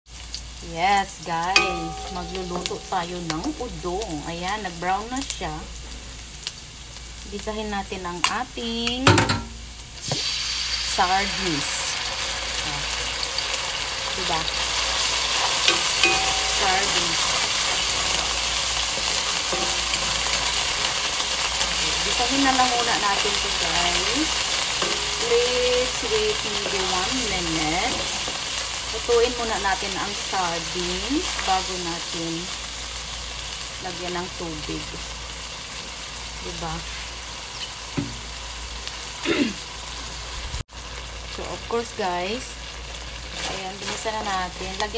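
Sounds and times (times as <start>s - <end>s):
fish sizzling in a wok: 0.1s - 44.9s
spatula scraping pan: 15.2s - 28.4s.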